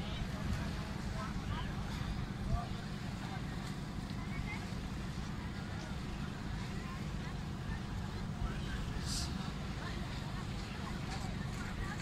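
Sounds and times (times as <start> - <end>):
distant indistinct voices: 0.0 - 12.0.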